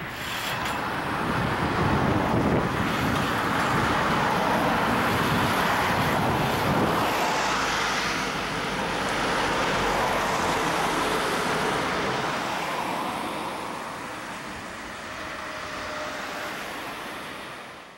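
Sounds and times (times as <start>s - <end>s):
road traffic passing: 0.0s - 17.9s.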